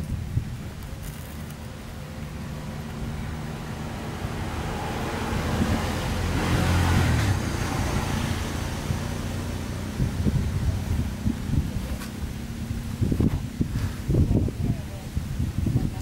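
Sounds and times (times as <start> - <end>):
tyre noise: 0.0 - 14.5
vehicle engine passing by: 1.6 - 14.2.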